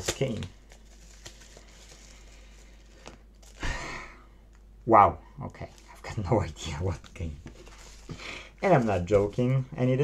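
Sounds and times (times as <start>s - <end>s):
packet rustling: 0.0s - 3.6s.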